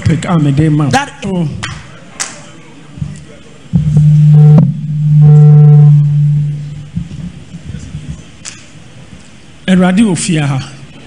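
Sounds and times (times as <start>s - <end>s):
low-pitched steady tone: 3.8s - 7.6s.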